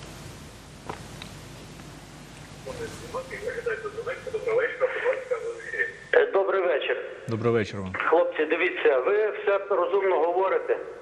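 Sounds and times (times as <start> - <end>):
speech over telephone line: 2.6 - 11.0.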